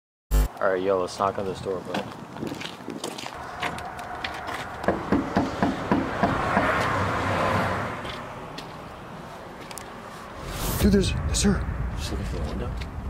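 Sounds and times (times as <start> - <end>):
knuckles knocking on door: 4.9 - 6.7
broad rushing noise: 10.0 - 13.0.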